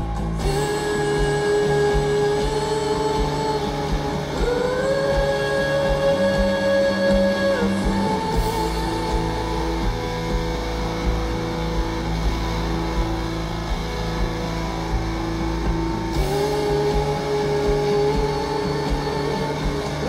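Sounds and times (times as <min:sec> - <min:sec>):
bass: 0:00.0 - 0:20.0
drums: 0:00.0 - 0:20.0
electric guitar chords: 0:00.0 - 0:20.0.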